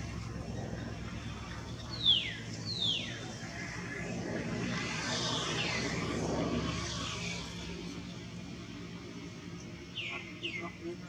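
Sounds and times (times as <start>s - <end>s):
distant aircraft engine drone: 0.0s - 11.0s.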